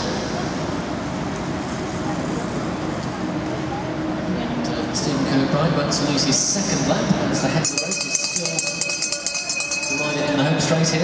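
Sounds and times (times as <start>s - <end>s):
faint indistinct voices: 0.0s - 11.0s
rushing arena background noise: 0.0s - 11.0s.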